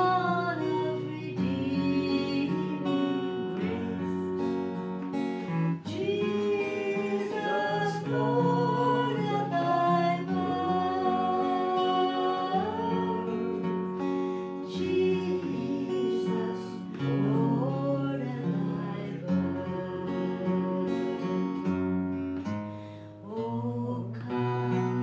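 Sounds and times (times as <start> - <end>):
woman singing: 0.0 - 22.2, 23.2 - 25.0
acoustic guitars: 0.0 - 25.0.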